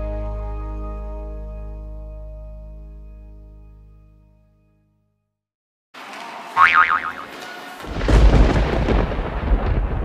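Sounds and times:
deep rumble of thunder: 0:07.8 - 0:10.0
sudden crackle: 0:07.8 - 0:10.0.

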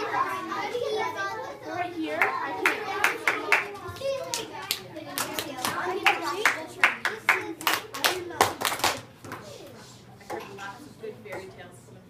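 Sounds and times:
children chattering: 0:00.0 - 0:11.6
sharp hand claps: 0:02.2 - 0:09.4.

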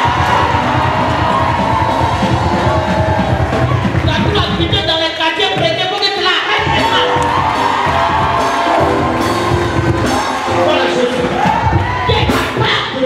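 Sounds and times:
congregation cheering and shouting: 0:00.0 - 0:13.0
live worship music: 0:00.0 - 0:13.0.

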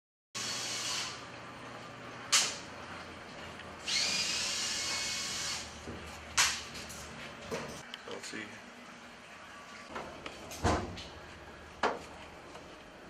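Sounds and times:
power drill whining: 0:03.8 - 0:05.7.

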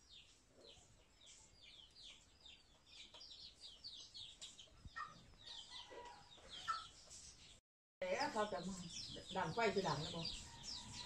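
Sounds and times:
chicks peeping: 0:00.0 - 0:11.0
chickens clucking: 0:00.2 - 0:07.6.

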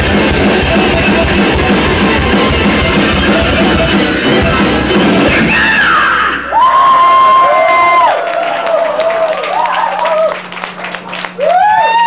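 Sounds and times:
heavy metal band playing live: 0:00.0 - 0:06.8.

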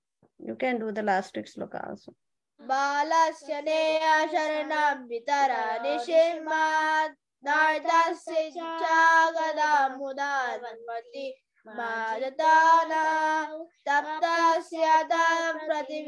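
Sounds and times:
child chanting a verse: 0:02.6 - 0:16.0.

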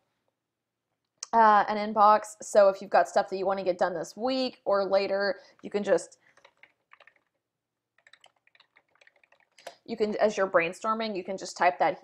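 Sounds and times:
computer keyboard typing: 0:05.6 - 0:09.8.

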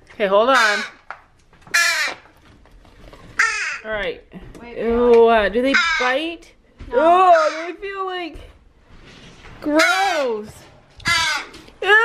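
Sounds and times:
young crow cawing: 0:00.5 - 0:01.1, 0:01.7 - 0:02.3, 0:03.4 - 0:03.8, 0:05.7 - 0:06.2, 0:07.3 - 0:07.8, 0:11.0 - 0:11.6.

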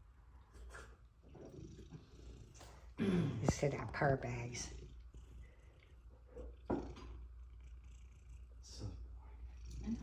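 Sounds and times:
cat purring: 0:00.6 - 0:10.0.

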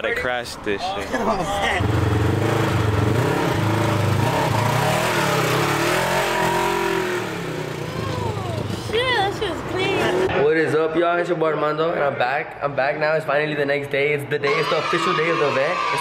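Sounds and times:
vehicle engine revving: 0:01.8 - 0:10.3.

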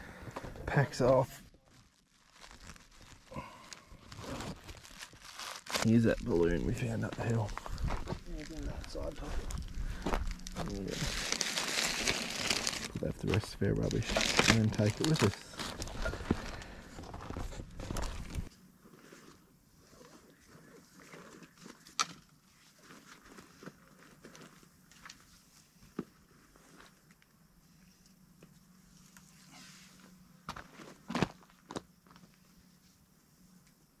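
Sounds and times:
plastic bag rustling: 0:01.6 - 0:18.5
footsteps on dirt: 0:07.0 - 0:10.9.

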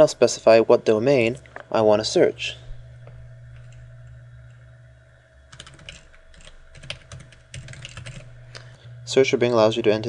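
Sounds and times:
keyboard typing: 0:05.5 - 0:08.4.

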